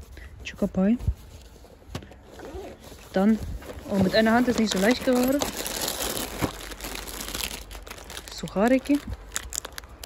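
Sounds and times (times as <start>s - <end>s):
cardboard box handling noise: 1.0s - 8.1s.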